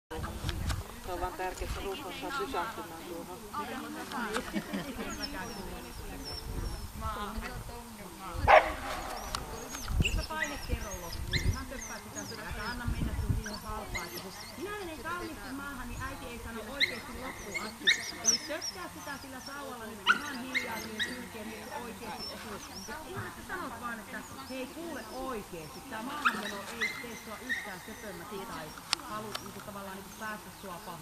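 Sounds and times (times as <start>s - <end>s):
dog barking: 8.5s - 9.1s, 20.0s - 21.3s.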